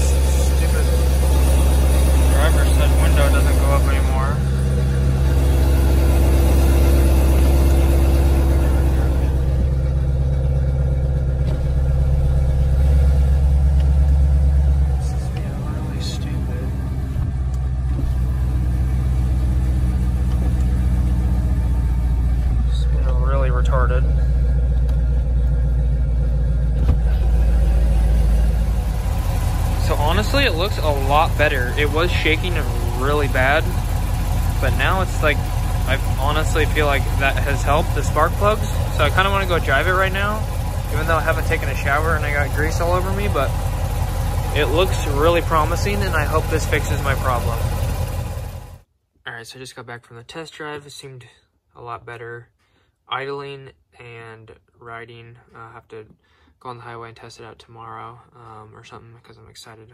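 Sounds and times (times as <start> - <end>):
car engine idling: 0.0 - 48.8.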